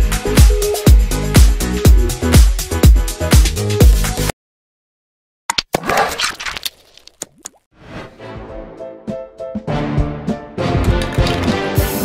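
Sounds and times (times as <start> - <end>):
background music with sustained notes: 8.0 - 12.0.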